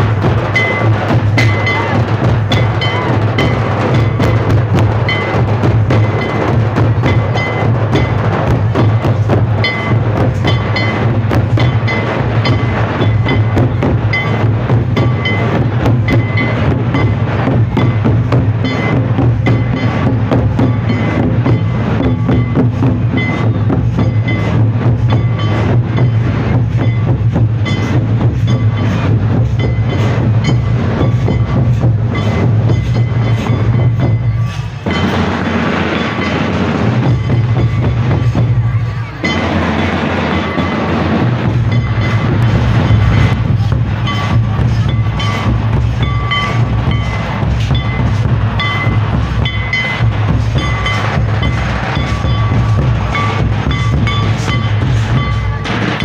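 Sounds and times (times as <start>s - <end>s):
fast hand-drumming: 0.0s - 56.0s
heavy low drum beat: 0.0s - 56.0s.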